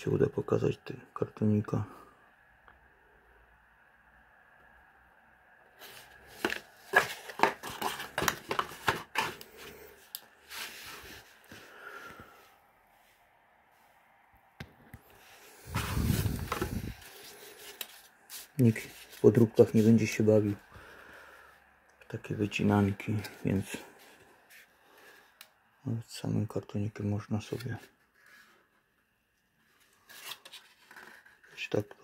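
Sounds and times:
cardboard clicks and rustles: 5.8s - 11.2s.

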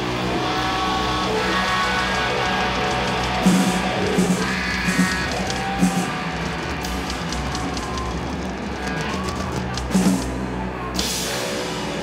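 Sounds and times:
doom metal band playing: 0.0s - 12.0s
drum and cymbal hits: 2.3s - 12.0s.

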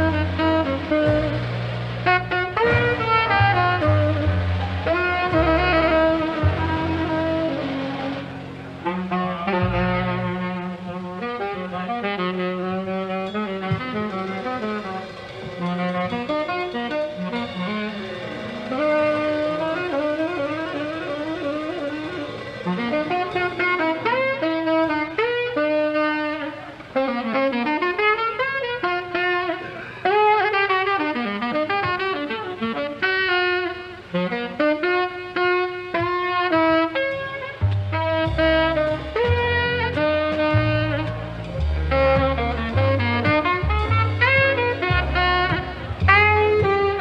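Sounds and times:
tenor saxophone fast melody: 0.0s - 47.0s.

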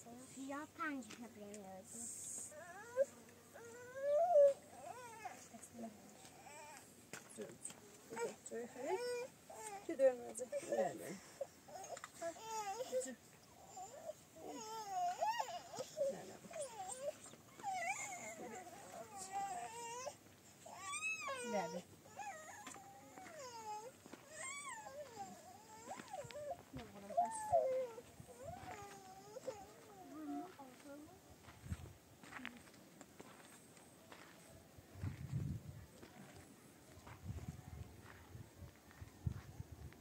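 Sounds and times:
young child crying: 20.8s - 30.6s.

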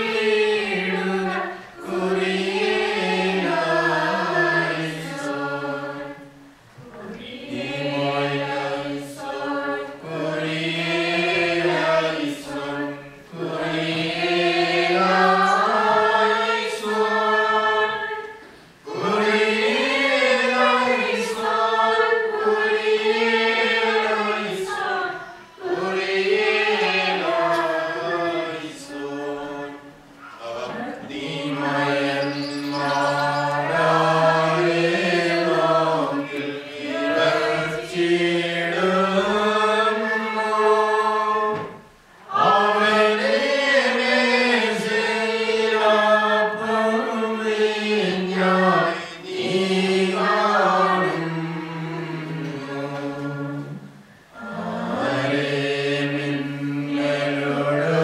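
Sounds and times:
voices singing liturgical chant: 0.0s - 58.0s.

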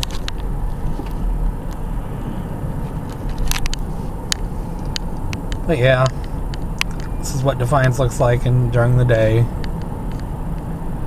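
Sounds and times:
car engine and tyre noise: 0.0s - 11.0s.

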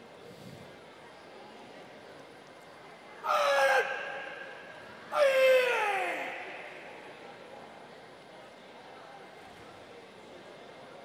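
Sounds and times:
athlete shouting loud calls: 3.2s - 7.2s.

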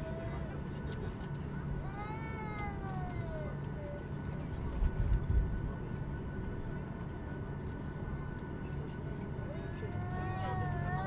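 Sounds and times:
aircraft cabin rumble: 0.0s - 11.0s.

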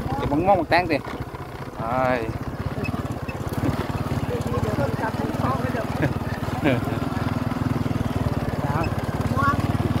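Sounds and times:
small vehicle engine chugging: 0.0s - 10.0s.

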